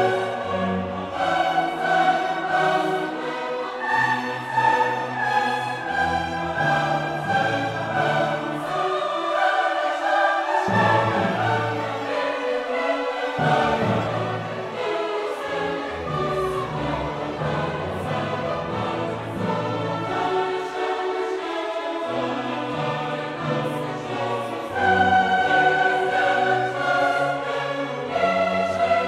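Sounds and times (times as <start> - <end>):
orchestral classical music: 0.0 - 29.0.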